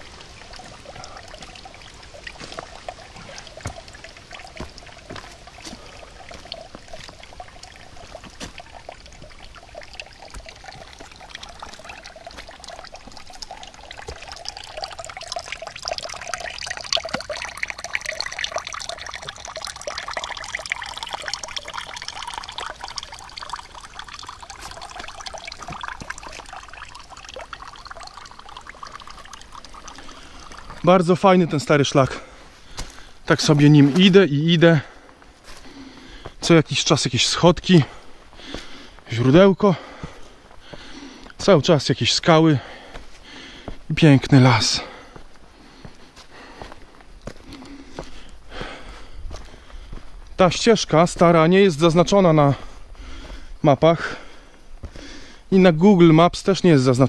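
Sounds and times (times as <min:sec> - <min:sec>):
water trickling into stone basin: 0:00.0 - 0:57.0.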